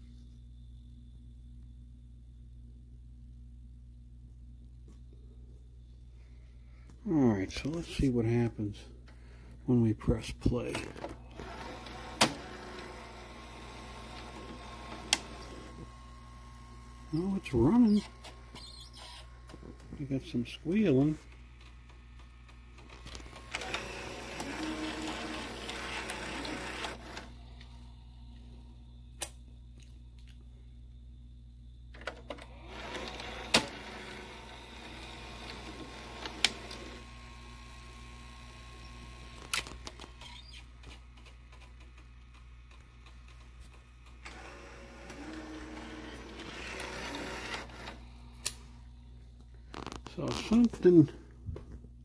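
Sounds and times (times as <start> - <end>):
whirring and squealing: 10.7 - 29.0, 32.1 - 49.3.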